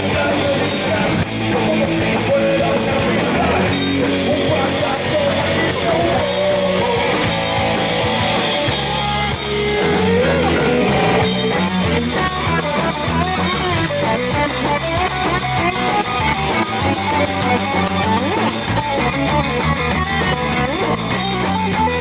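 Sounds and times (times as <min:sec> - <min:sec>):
fast drum beat: 0:00.0 - 0:22.0
rock band playing loud: 0:00.0 - 0:22.0.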